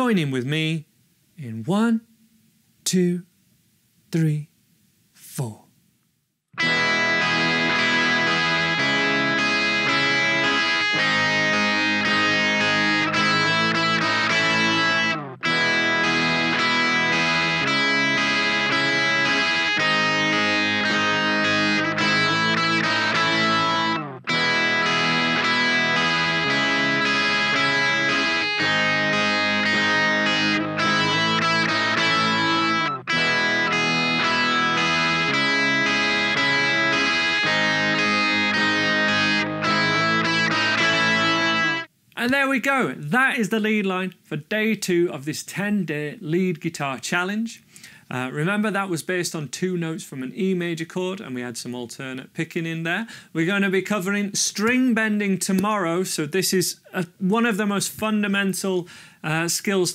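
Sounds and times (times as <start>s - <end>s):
electric guitar lead line: 6.6s - 41.9s
strummed chord backing: 6.6s - 41.9s.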